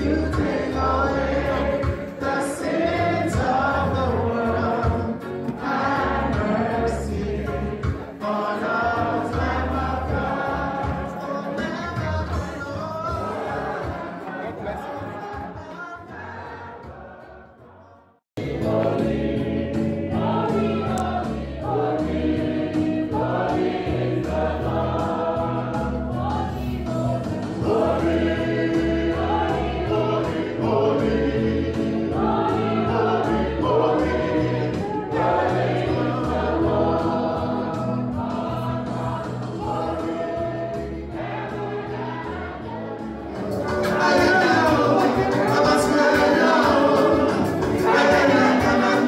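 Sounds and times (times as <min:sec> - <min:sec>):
instrumental backing with beat: 0:00.0 - 0:16.2, 0:18.4 - 0:49.0
choir singing gospel hymn: 0:00.0 - 0:49.0.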